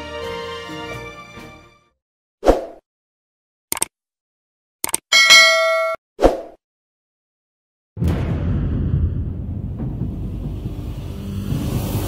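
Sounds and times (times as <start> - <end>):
notification bell chime: 5.2 - 6.0.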